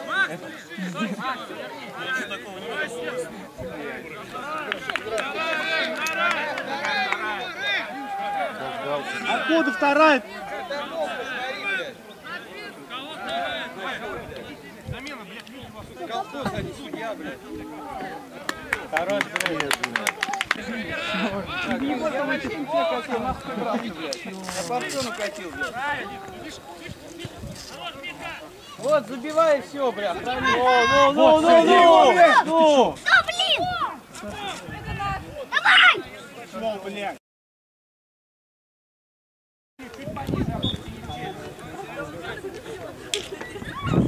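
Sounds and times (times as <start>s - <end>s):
men talking indistinctly: 0.0s - 33.1s, 33.9s - 37.2s, 39.8s - 43.6s
men shouting: 30.3s - 34.6s.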